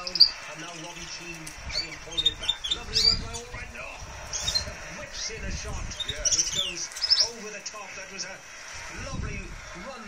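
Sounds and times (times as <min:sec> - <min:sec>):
canaries chirping: 0:00.0 - 0:10.0
radio football commentary: 0:00.0 - 0:10.0.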